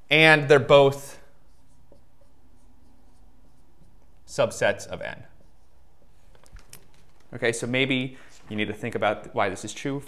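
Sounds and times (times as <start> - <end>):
marker writing on whiteboard: 0.5 - 7.1.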